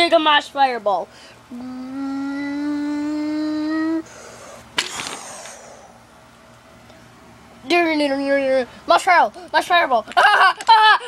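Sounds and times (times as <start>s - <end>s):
child's drawn-out voice: 1.5s - 4.1s.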